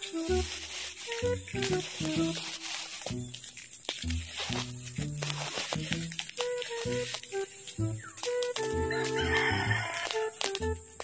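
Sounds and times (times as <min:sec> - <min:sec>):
background music: 0:00.0 - 0:11.0
rooster crowing: 0:08.6 - 0:10.4.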